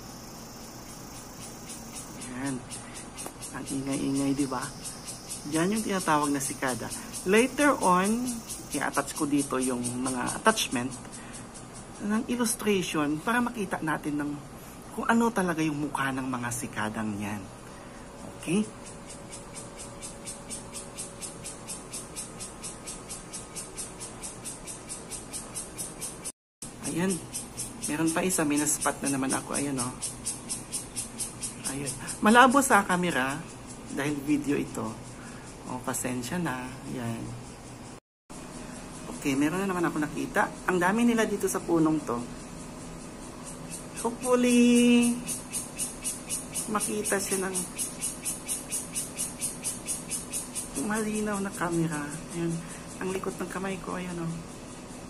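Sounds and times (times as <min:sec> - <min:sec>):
cicadas pulsing buzz: 0:00.0 - 0:55.0.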